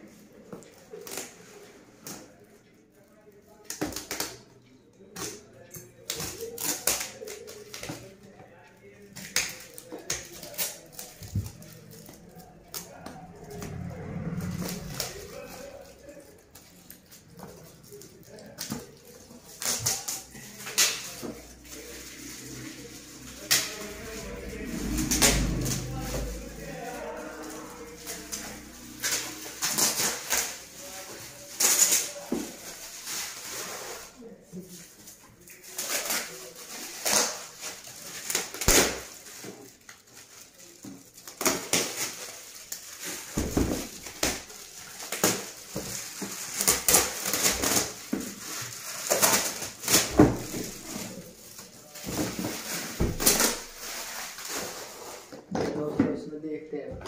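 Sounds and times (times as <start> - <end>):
foil crinkling: 9.1 - 12.8, 13.4 - 55.3.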